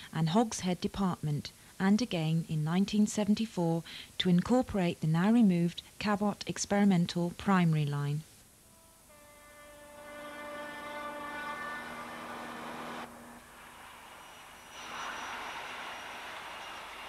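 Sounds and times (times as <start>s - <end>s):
train horn held note: 8.7s - 13.4s
train running past: 9.2s - 17.0s.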